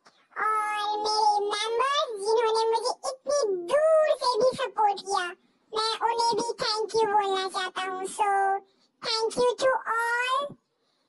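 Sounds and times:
high-pitched child-like voice talking: 0.1 - 10.6.

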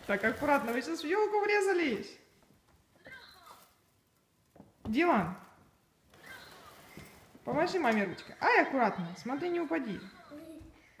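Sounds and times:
child's voice: 10.0 - 10.9.

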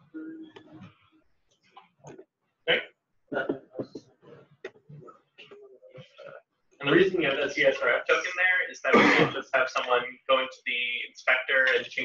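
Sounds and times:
person talking indistinctly: 2.1 - 4.0, 4.9 - 12.0.

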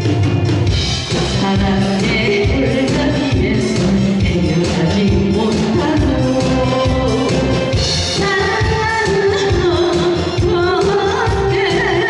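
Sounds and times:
amplified backing music: 0.0 - 12.0
woman singing into microphone: 1.2 - 12.0.

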